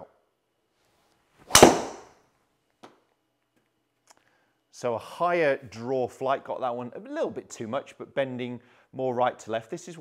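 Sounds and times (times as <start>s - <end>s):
golf club striking ball: 1.5s - 2.1s.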